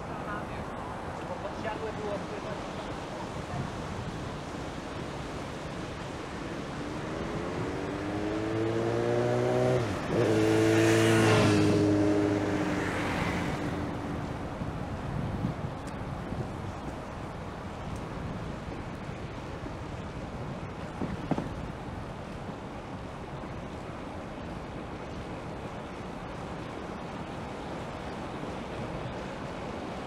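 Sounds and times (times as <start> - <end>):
wind and road noise: 0.0 - 30.0
motor vehicle passing: 6.0 - 14.6.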